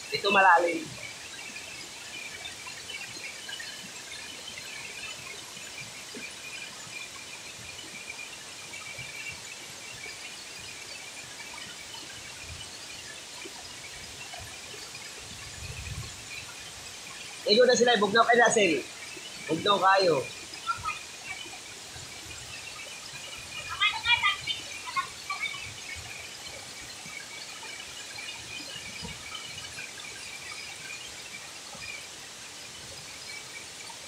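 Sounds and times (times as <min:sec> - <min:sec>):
waterfall rushing: 0:00.0 - 0:34.0.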